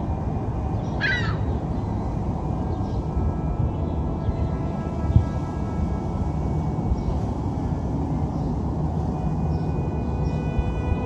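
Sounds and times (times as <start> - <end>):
low city ambience rumble: 0.0 - 11.0
falling bird call: 1.0 - 1.6.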